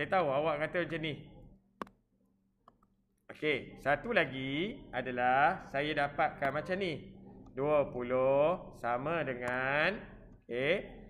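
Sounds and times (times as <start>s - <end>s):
stylus tapping on touchscreen: 1.8s - 3.0s.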